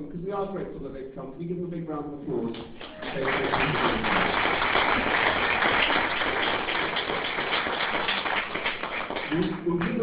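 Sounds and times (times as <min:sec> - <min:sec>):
audience applause: 0:02.8 - 0:10.0.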